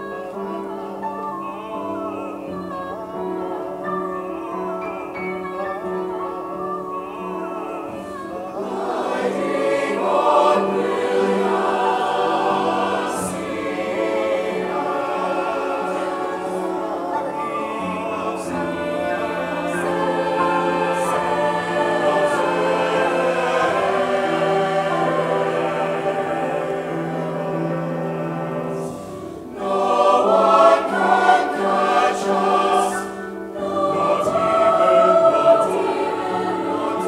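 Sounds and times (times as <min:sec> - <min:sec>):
mixed choir singing: 0:00.0 - 0:37.0
piano accompaniment: 0:00.0 - 0:37.0.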